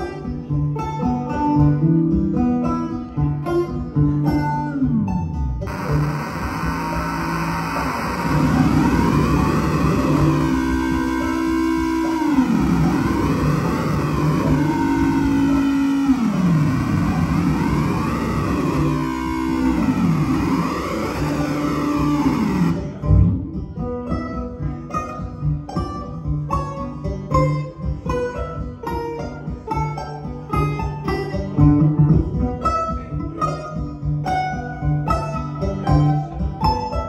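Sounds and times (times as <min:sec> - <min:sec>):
plucked banjo notes: 0:00.0 - 0:37.0
swirling banjo wash with pitch sweeps: 0:00.0 - 0:37.0.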